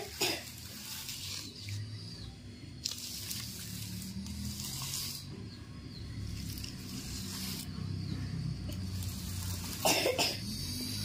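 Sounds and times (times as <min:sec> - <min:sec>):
person coughing: 0:09.8 - 0:10.5.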